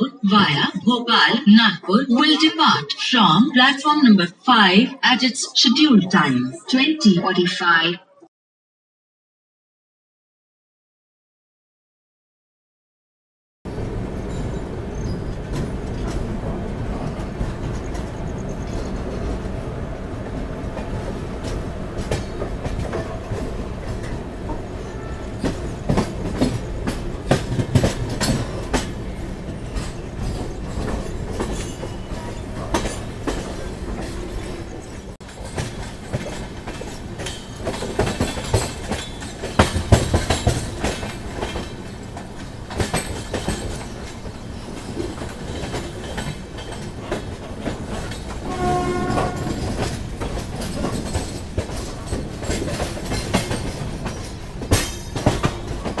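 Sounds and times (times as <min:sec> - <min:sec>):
train running rumble: 0:13.7 - 0:56.0
train wheels clattering over rail joints: 0:20.8 - 0:24.7, 0:25.3 - 0:56.0
train horn blast: 0:48.4 - 0:49.8.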